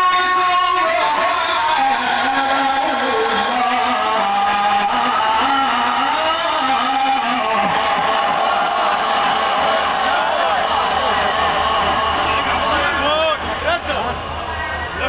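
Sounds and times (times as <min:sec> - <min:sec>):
man reciting melodically into microphone: 0:00.0 - 0:07.8
audience calling out: 0:00.0 - 0:15.0.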